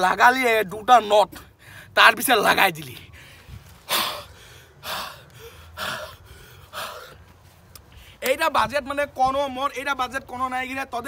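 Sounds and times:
person breathing huffs: 0:03.1 - 0:07.3.

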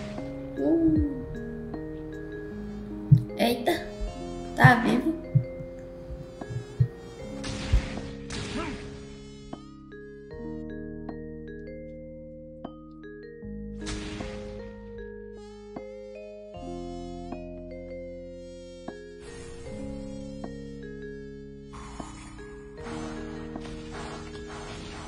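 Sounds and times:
soft sustained music notes: 0:00.0 - 0:08.5
soft low thumps: 0:00.1 - 0:01.6, 0:02.9 - 0:07.1.

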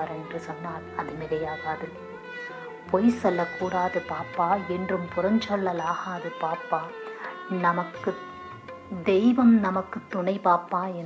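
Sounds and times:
instrumental accompaniment: 0:00.0 - 0:11.0.

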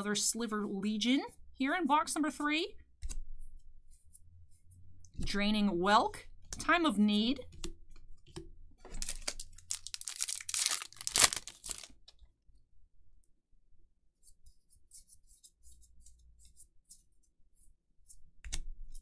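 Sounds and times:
foil wrapper tearing and crinkling: 0:08.9 - 0:12.0.

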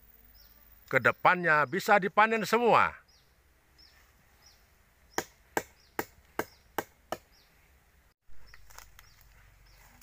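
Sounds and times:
sharp knocks on tree trunk: 0:05.1 - 0:07.3.

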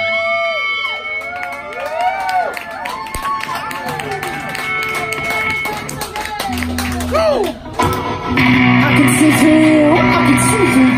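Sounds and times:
amplified electric guitars: 0:03.5 - 0:10.9.

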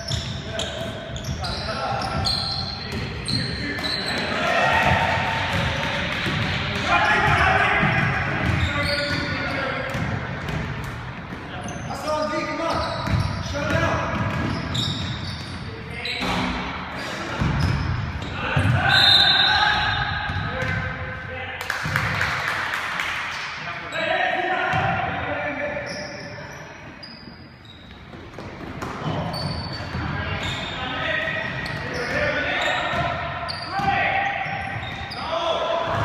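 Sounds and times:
basketball bouncing on wood floor: 0:04.8 - 0:08.8.

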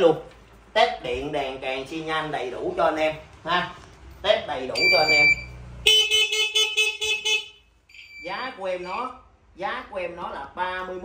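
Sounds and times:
motorcycle horn honk: 0:05.8 - 0:07.7.

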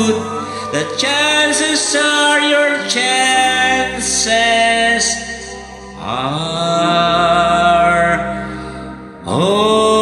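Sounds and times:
karaoke backing track: 0:00.0 - 0:10.0
man singing a ballad: 0:00.0 - 0:10.0.

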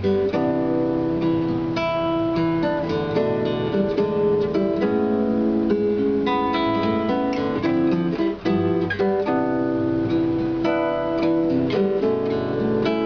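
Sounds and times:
classical guitar bossa nova: 0:00.0 - 0:13.0.

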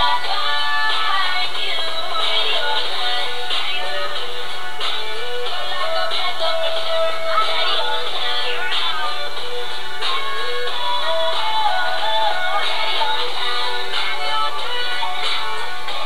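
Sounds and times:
pop song with singing: 0:00.0 - 0:16.0.

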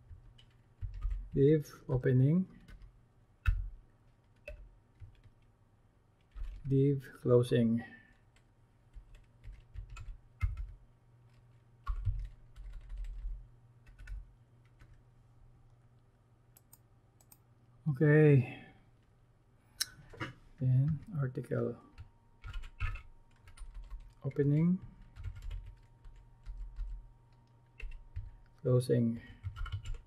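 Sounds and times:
keyboard typing: 0:00.0 - 0:01.4, 0:02.6 - 0:05.4, 0:06.2 - 0:06.7, 0:08.3 - 0:15.0, 0:21.9 - 0:28.6, 0:29.4 - 0:30.0.

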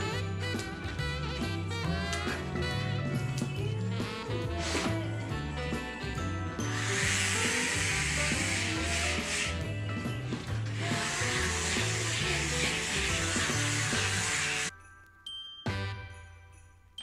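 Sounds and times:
rotary nail grinder rasping: 0:06.6 - 0:09.7, 0:10.7 - 0:14.7.

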